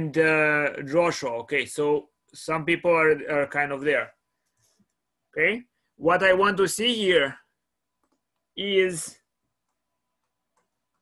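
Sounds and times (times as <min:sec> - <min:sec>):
faint clicks: 0:09.6 - 0:11.0.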